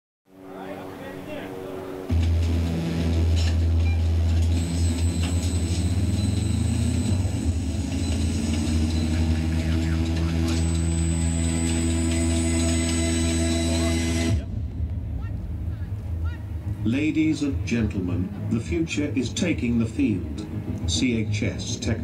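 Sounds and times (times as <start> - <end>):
deep electronic hum: 0.3 - 22.0.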